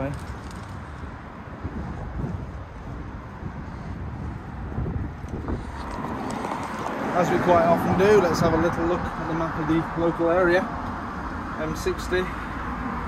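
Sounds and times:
wind buffeting microphone: 0:00.0 - 0:11.7
road traffic rumble: 0:00.0 - 0:13.0.

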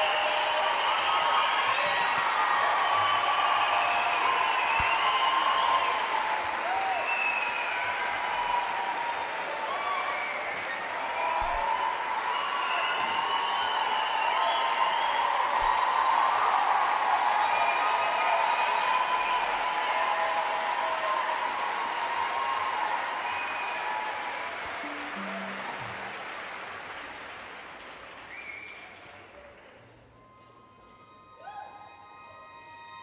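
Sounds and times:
audience applauding: 0:00.0 - 0:33.0.

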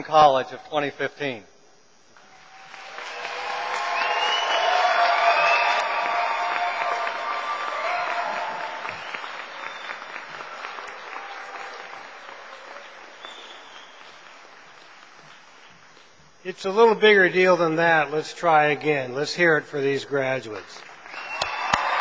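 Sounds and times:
audience applauding: 0:02.2 - 0:16.0, 0:20.2 - 0:22.0
audience shouting and cheering: 0:02.4 - 0:13.0, 0:21.2 - 0:22.0.

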